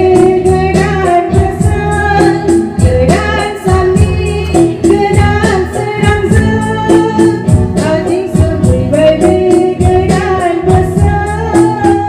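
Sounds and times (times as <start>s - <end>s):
backing music with steady beat: 0.0s - 12.0s
woman singing into microphone: 0.0s - 12.0s.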